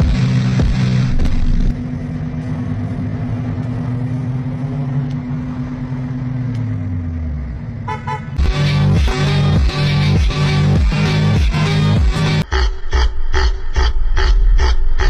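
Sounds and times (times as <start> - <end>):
car deep steady tone: 0.0 - 15.0.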